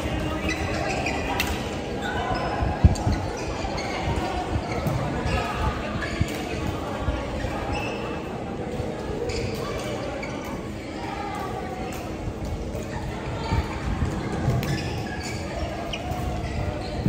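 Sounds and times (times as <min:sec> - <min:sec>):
players' voices: 0:00.0 - 0:17.0.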